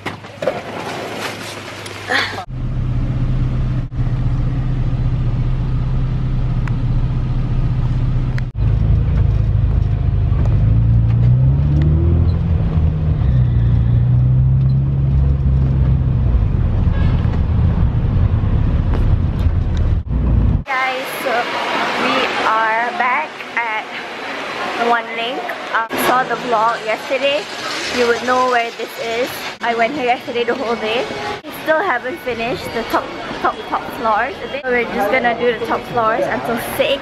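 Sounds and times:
van engine and road noise: 0:02.4 - 0:24.8.

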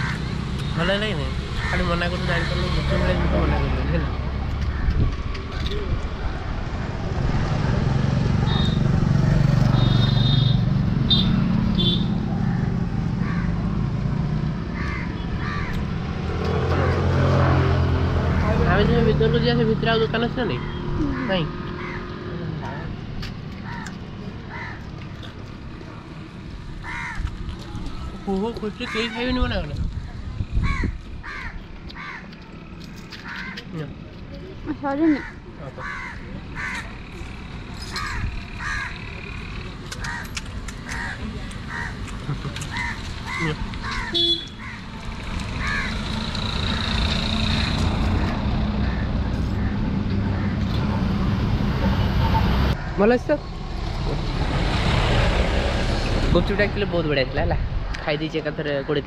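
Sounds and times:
vehicle engine rumble on road: 0:35.6 - 0:58.8
harsh bird calls: 0:42.6 - 0:50.7.

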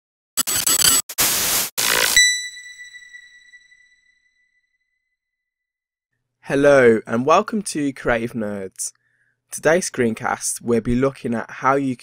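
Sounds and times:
digital static bursts: 0:00.4 - 0:02.4
high ringing tone: 0:01.8 - 0:05.0.

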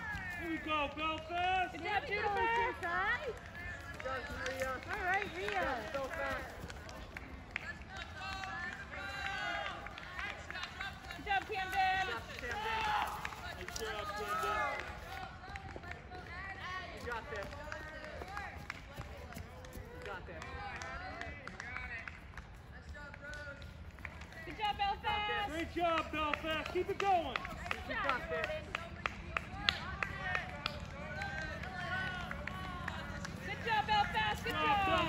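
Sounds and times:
spectators shouting and cheering: 0:00.0 - 0:15.4, 0:29.4 - 0:35.0.

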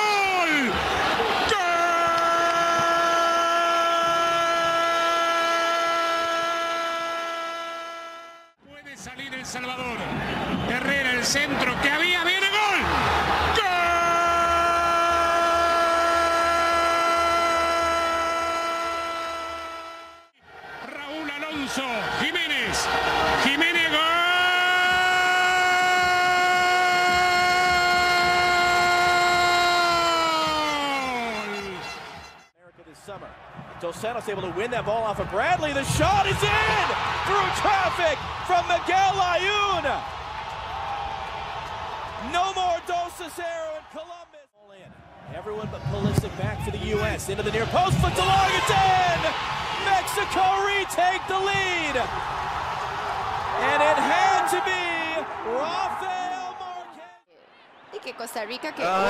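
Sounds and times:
rapid excited speech: 0:08.6 - 0:16.5, 0:20.8 - 0:31.8, 0:32.7 - 0:40.0, 0:42.2 - 0:52.2, 0:53.5 - 0:57.2, 0:58.0 - 0:59.0
commentator long goal shouts: 0:34.3 - 0:40.0, 0:46.5 - 0:52.1, 0:58.7 - 0:59.0.

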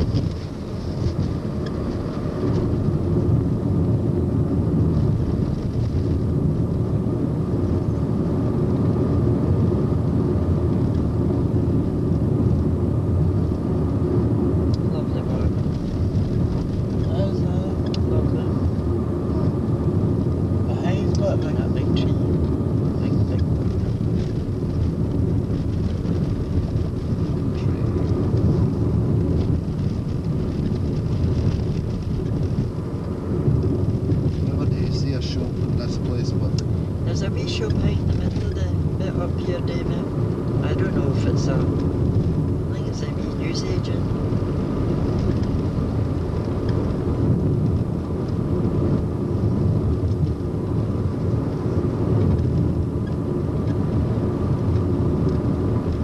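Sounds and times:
car engine and tyres rumbling: 0:00.0 - 0:56.0.

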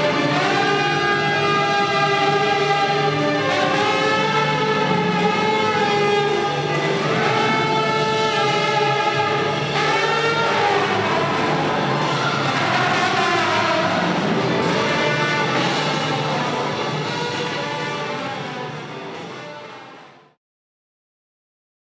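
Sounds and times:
accordion: 0:00.0 - 0:20.0
trombone: 0:00.0 - 0:20.4
tuba: 0:00.0 - 0:20.4.

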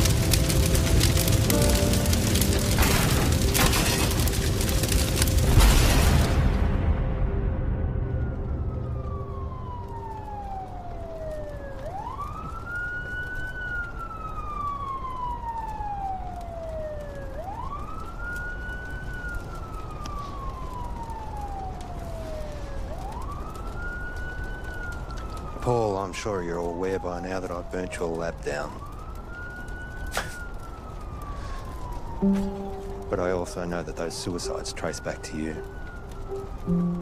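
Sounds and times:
emergency siren wailing: 0:00.0 - 0:06.5, 0:07.2 - 0:37.0.

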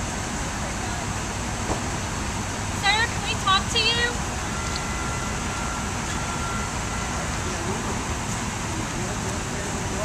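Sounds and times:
traffic hiss: 0:00.0 - 0:10.0
faint thin whine: 0:04.4 - 0:08.0.

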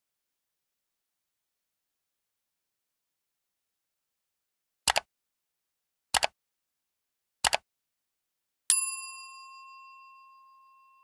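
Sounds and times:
bell chime ding: 0:08.7 - 0:11.0.

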